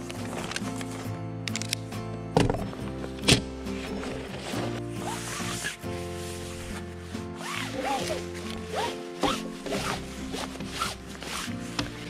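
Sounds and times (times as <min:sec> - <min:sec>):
background music: 0:00.0 - 0:12.0
fabric rustling and swishing: 0:03.0 - 0:12.0.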